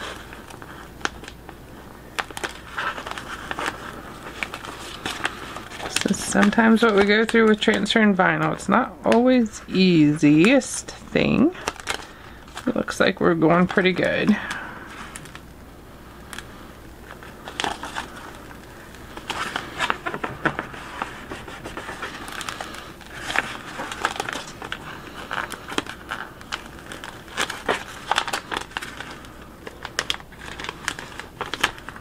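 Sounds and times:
transfer tape peeling and crackling: 0.0 - 9.3, 11.6 - 12.7, 13.6 - 32.0.

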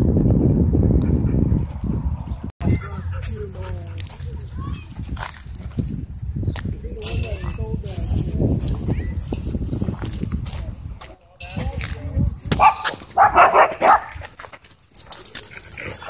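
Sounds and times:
dogs barking loudly: 12.5 - 14.3.

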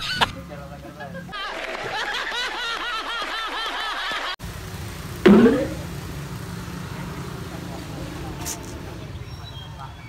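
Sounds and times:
traffic rumble: 0.0 - 3.1, 3.8 - 10.0
short high hiss: 4.4 - 9.0
loud rising sound: 5.2 - 6.3.

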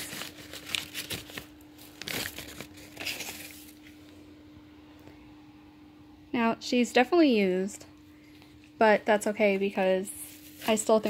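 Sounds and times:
paper wrapping crinkling: 0.0 - 4.0, 10.2 - 11.0.

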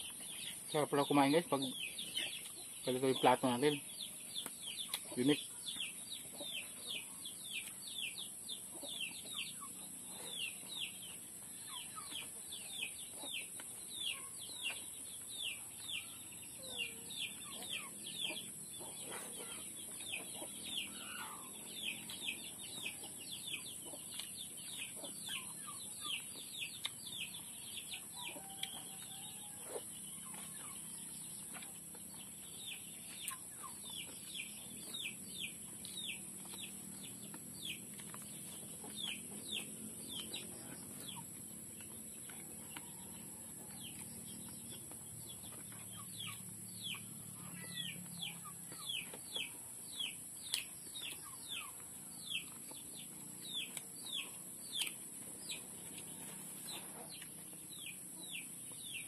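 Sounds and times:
chicks peeping: 0.0 - 59.0.

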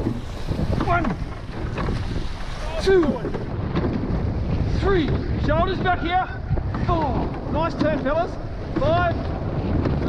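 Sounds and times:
water rushing along boat hull: 0.0 - 10.0
wind buffeting microphone: 0.0 - 10.0.

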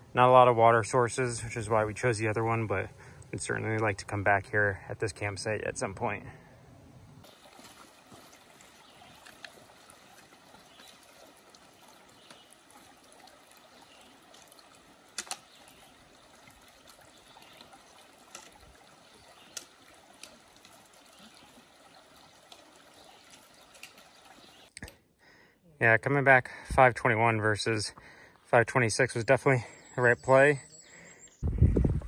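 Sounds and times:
stream trickling over stones: 7.2 - 24.8
trekking pole tips clicking on rock: 15.2 - 15.5.

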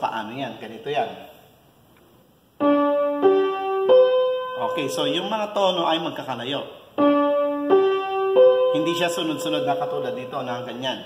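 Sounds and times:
piano single notes: 2.6 - 6.0, 6.9 - 10.8.

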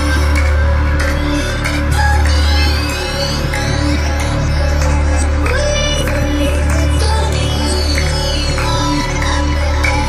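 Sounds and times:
electronic chill-out music: 0.0 - 10.0.

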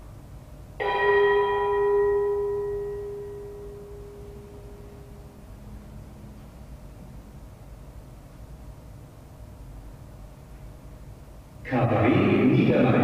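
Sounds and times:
bell ringing: 0.8 - 5.4.

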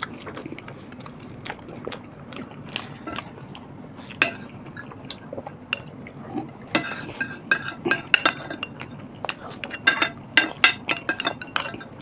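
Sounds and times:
spoons clinking on glass plates: 4.2 - 4.9, 6.7 - 12.0.

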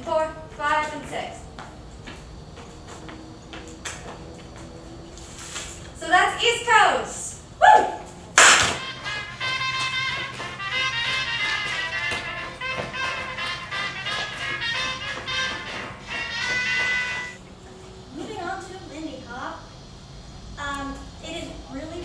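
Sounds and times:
loud hand clap: 8.4 - 17.4
music with a steady beat: 8.8 - 17.4.

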